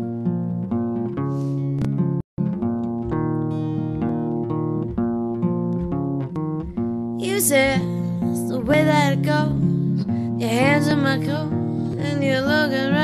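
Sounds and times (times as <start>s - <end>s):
electric guitar picking notes and chords: 0.0s - 13.0s.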